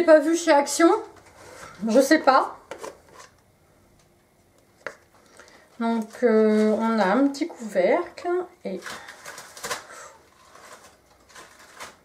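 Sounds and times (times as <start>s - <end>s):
plastic rustling: 8.2s - 12.0s.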